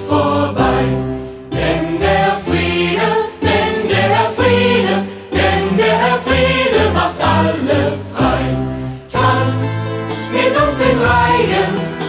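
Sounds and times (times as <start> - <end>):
choir singing: 0.0 - 12.0
instrumental accompaniment with bass: 0.0 - 12.0.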